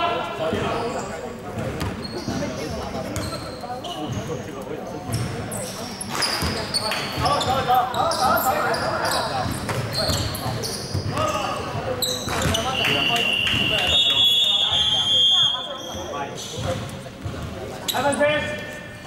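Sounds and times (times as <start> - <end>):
sneakers squeaking on floor: 0.5 - 19.0.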